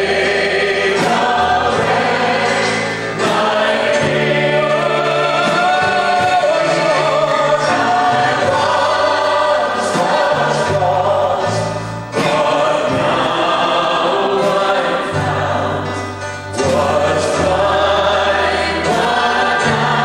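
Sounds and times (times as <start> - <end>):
gospel band with drums and guitar: 0.0 - 20.0
people singing: 0.0 - 20.0.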